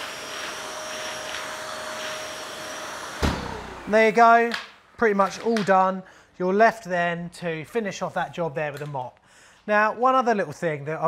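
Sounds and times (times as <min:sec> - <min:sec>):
wet vac running with whine: 0:00.0 - 0:04.2.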